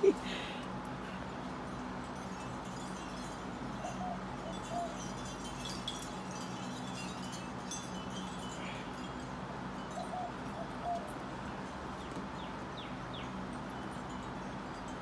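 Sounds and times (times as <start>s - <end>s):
wind chimes ringing: 0.0s - 15.0s.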